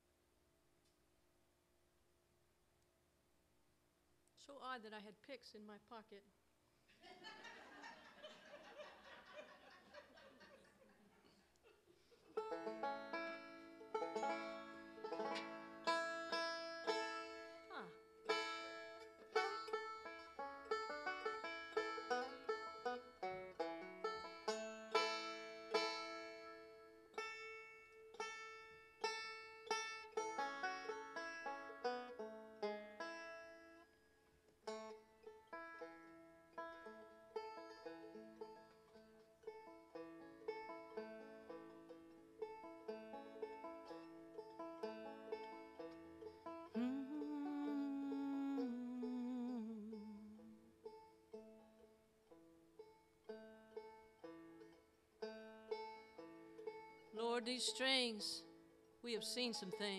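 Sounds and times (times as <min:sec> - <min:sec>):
banjo picking: 0:12.0 - 0:59.9.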